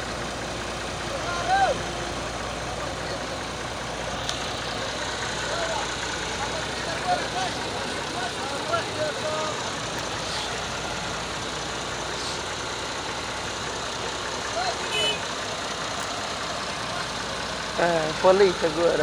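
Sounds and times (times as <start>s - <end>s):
diesel engine idling: 0.0s - 19.0s
men's voices: 0.0s - 19.0s.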